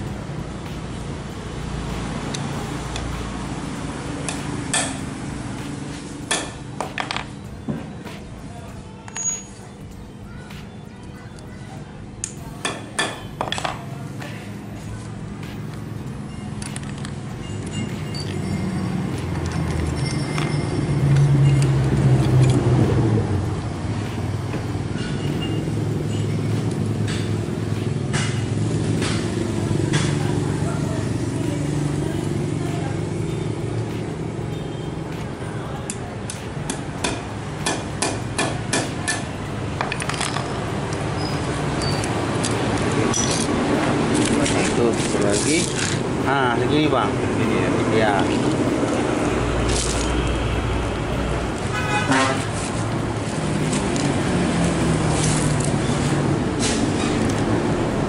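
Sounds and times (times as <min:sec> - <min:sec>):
traffic hum: 0:00.0 - 0:58.0
metal chain clicking and clinking: 0:16.6 - 0:22.6, 0:41.8 - 0:43.6.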